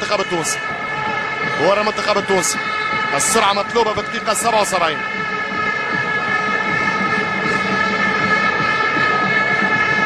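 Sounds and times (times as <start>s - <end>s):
drone of many horns: 0.0s - 10.0s
stadium crowd noise: 0.0s - 10.0s.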